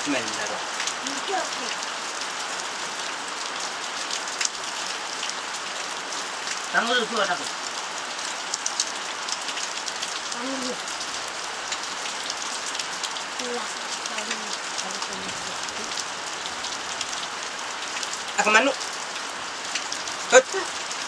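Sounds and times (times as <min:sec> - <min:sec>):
rain patter: 0:00.0 - 0:21.0
child's high voice: 0:01.0 - 0:01.7.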